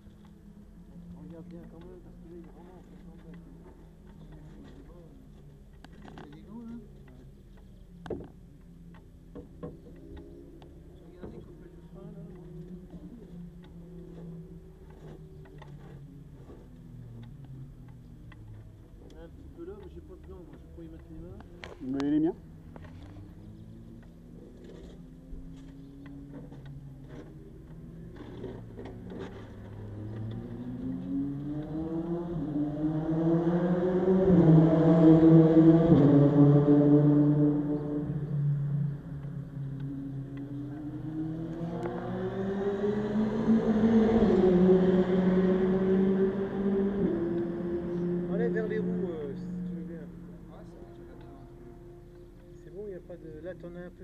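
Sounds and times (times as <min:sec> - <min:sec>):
engine revving: 0:09.4 - 0:54.0.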